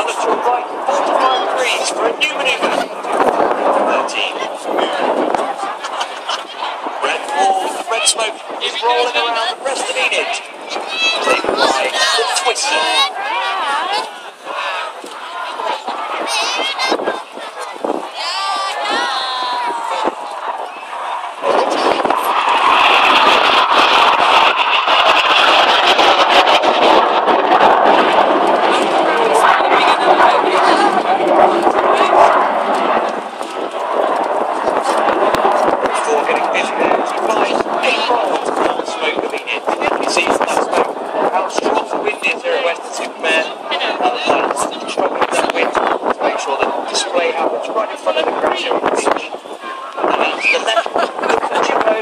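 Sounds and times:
high jet engine whine: 0:00.0 - 0:52.0
jets passing overhead: 0:00.0 - 0:52.0
wind buffeting microphone: 0:00.0 - 0:52.0.

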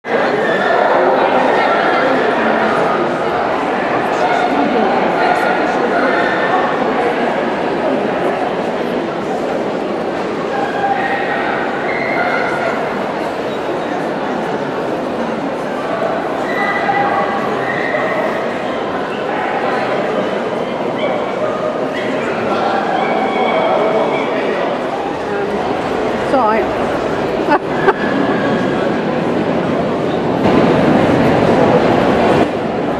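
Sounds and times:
people talking: 0:00.0 - 0:32.9.

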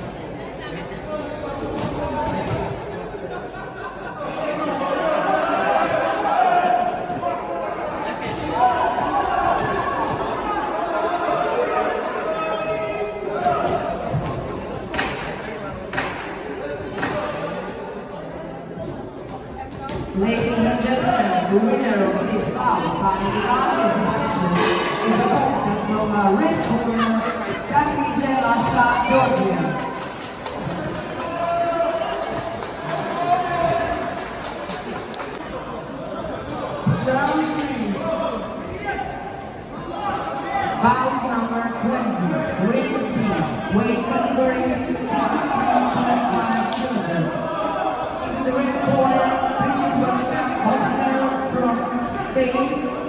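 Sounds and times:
overlapping voices echoing in hall: 0:00.0 - 0:53.0.

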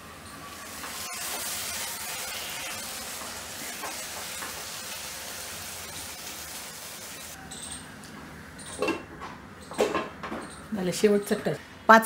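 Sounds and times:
food sizzling in a pan: 0:00.0 - 0:07.4.

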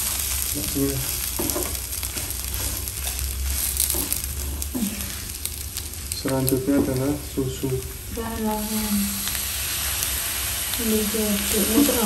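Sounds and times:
food sizzling in pan: 0:00.0 - 0:12.0
spatula stirring and scraping: 0:01.0 - 0:06.1.

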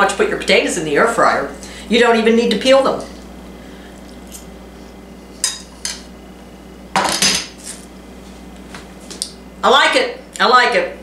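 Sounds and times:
plate clattering on counter: 0:07.0 - 0:07.6.

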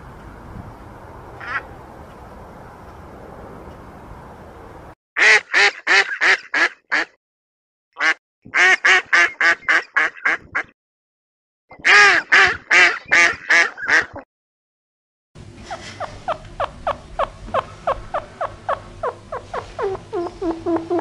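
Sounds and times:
duck quacking: 0:05.2 - 0:07.2, 0:08.0 - 0:10.7, 0:11.8 - 0:14.2.

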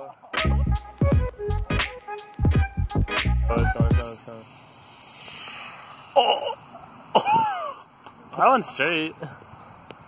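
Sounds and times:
rocket burning hiss: 0:04.0 - 0:07.4.

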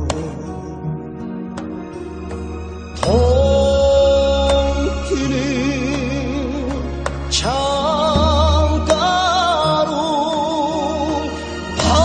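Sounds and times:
song with instrumental backing: 0:00.0 - 0:12.0.

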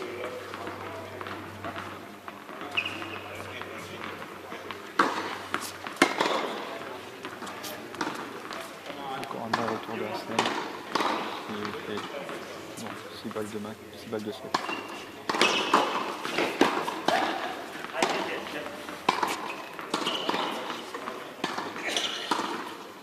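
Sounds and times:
people talking indistinctly: 0:02.4 - 0:22.4.

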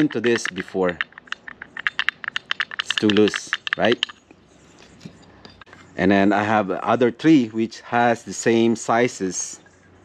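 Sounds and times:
light clicks of metal parts: 0:00.0 - 0:06.0
background hum: 0:00.0 - 0:10.0.

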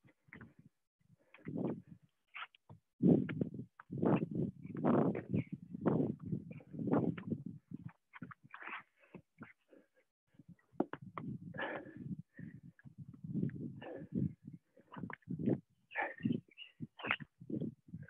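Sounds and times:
person breathing hard: 0:11.5 - 0:15.2.

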